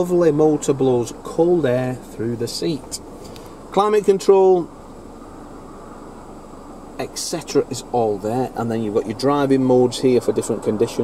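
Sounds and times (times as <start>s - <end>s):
climate control fans blowing: 0.0s - 11.0s.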